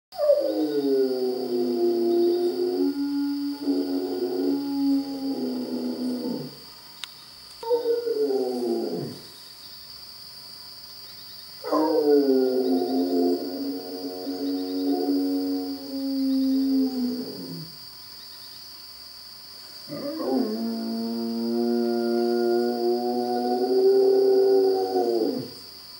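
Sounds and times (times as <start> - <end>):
dog howling: 0.2 - 6.6, 7.6 - 9.2, 19.9 - 25.6.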